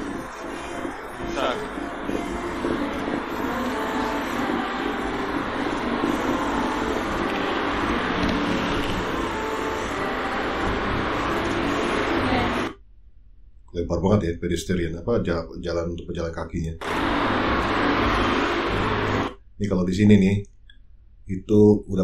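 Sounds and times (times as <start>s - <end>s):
man talking: 1.2s - 1.6s, 13.7s - 16.8s, 19.6s - 20.5s, 21.3s - 22.0s.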